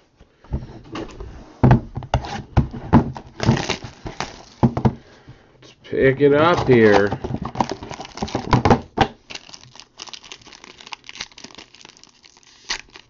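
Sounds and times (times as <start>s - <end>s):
cardboard scraping rustle: 1.3s - 4.8s, 6.4s - 8.6s
cardboard boxes knocking on table: 1.6s - 5.0s, 6.5s - 9.2s.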